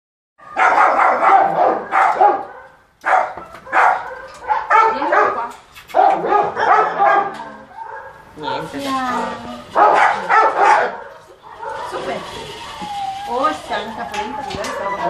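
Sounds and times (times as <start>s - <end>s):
dog barking: 0.4s - 8.3s, 9.7s - 12.2s.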